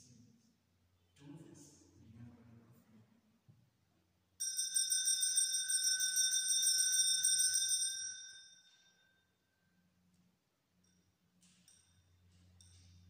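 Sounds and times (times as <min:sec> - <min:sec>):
altar bells jingling: 0:04.4 - 0:09.2.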